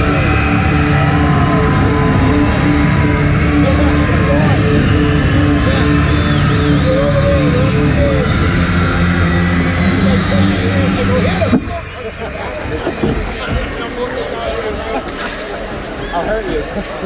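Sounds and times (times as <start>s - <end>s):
music over public address system: 0.0s - 15.2s
crowd chatter: 0.0s - 17.0s.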